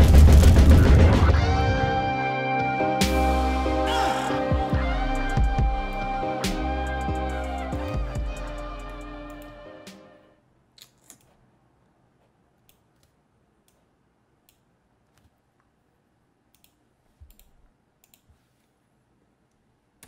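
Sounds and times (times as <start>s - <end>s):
guitar music loop: 1.3s - 10.1s
computer mouse clicks: 10.8s - 11.4s, 12.6s - 15.7s, 16.5s - 18.4s.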